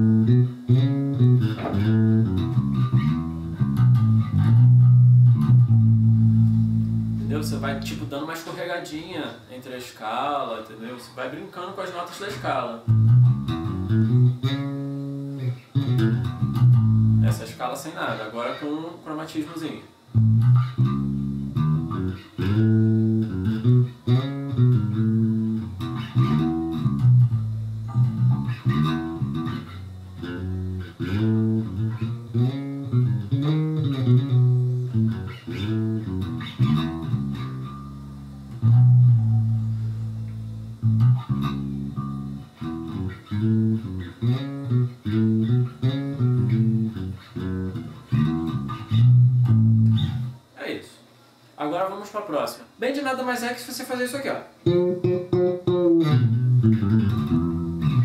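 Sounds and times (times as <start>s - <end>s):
electric bass sliding notes: 0.0s - 8.3s, 12.8s - 17.6s, 20.1s - 50.4s, 54.6s - 58.0s.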